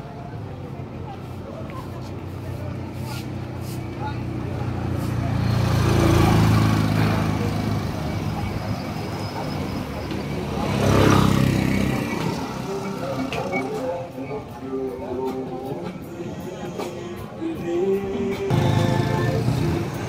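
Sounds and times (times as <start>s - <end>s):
motorcycles passing: 2.2s - 14.4s, 18.4s - 20.0s.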